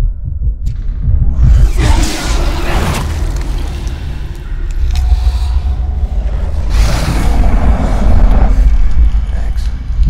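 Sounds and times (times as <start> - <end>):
deep rumbling drone: 0.0 - 10.0
rushing noise: 1.3 - 9.9.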